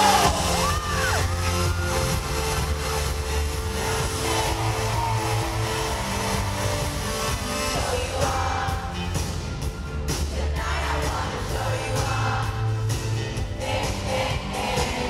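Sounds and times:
live pop music with heavy bass: 0.0s - 15.0s.

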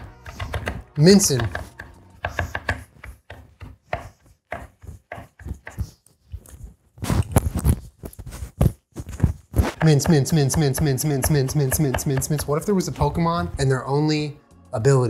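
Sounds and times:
knife chopping on wooden board: 0.0s - 5.9s, 9.6s - 13.1s.

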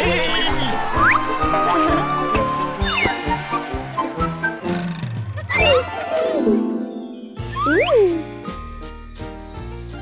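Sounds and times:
jingly cartoon music: 0.0s - 10.0s.

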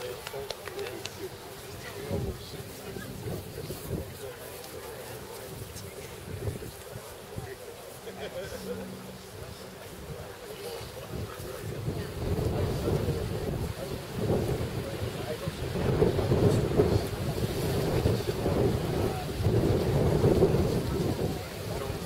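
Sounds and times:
wind buffeting microphone: 0.0s - 7.9s, 9.2s - 22.0s.

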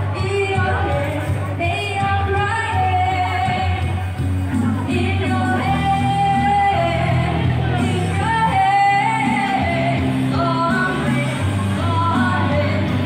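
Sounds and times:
rock backing track: 0.0s - 13.0s
woman singing through speaker: 0.0s - 13.0s.

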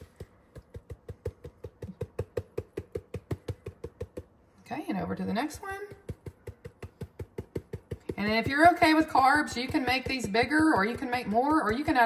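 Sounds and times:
spice jar rattling: 0.0s - 4.3s, 5.9s - 11.8s.

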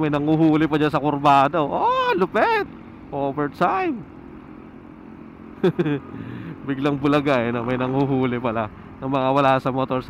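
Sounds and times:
motorcycle engine and road rumble: 0.0s - 10.0s.

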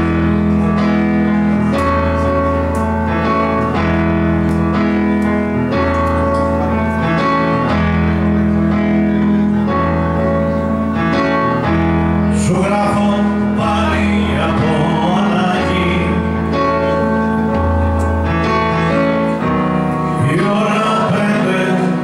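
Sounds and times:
band playing sustained chords: 0.0s - 22.0s
steady deep bass: 0.0s - 22.0s.

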